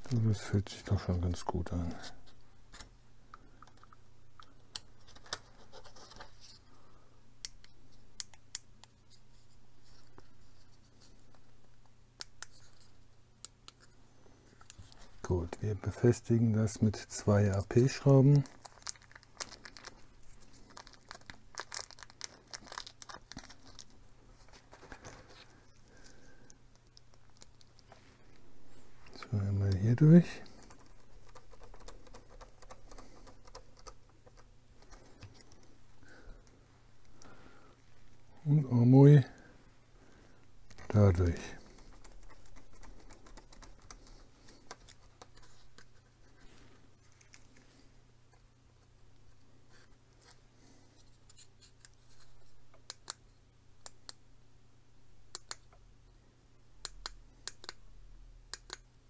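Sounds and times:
plastic bag crinkling: 18.2 - 25.4.

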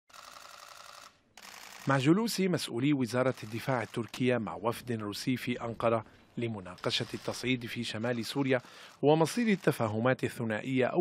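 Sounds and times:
camera shutters clicking: 0.1 - 2.0.

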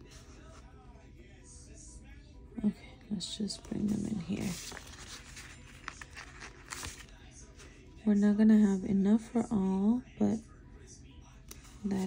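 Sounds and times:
paper sticker sheet rustling: 3.6 - 7.8.

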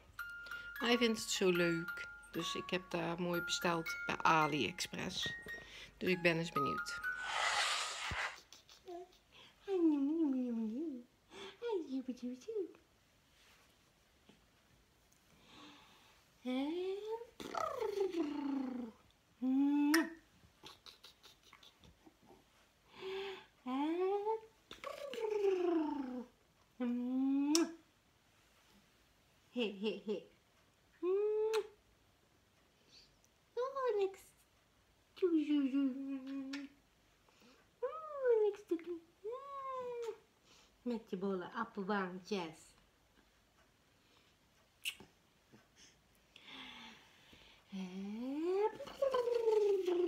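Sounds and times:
woman's wordless pitch slides: 0.8 - 5.4, 6.0 - 7.0.

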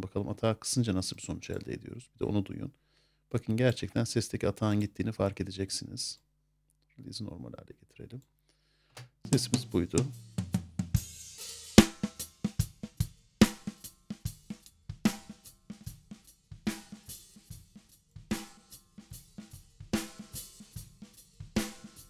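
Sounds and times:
kick and snare drum loop: 9.0 - 22.0.

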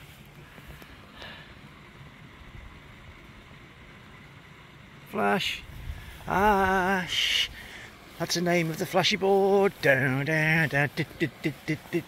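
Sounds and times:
wind rumble on microphone: 5.6 - 6.9.

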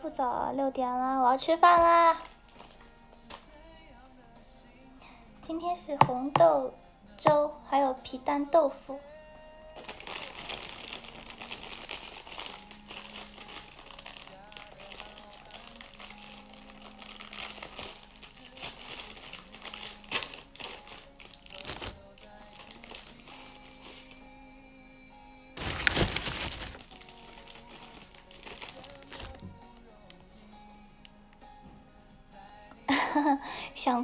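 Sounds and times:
quiet background music: 0.0 - 34.0
packaging crinkling: 9.8 - 24.2, 25.6 - 29.4.

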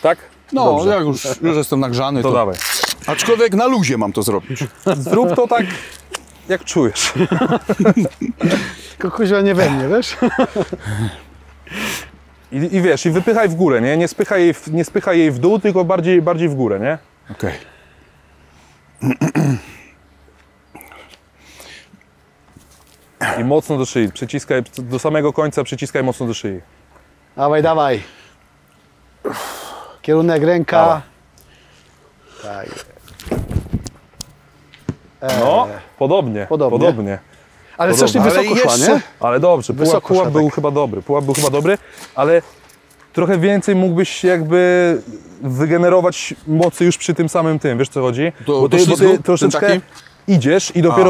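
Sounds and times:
man speaking in broken bursts: 37.8 - 42.4, 47.0 - 51.0.

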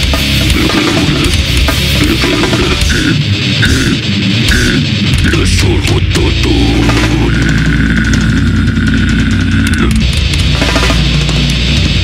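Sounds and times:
heavy distorted guitar music: 0.0 - 12.0.

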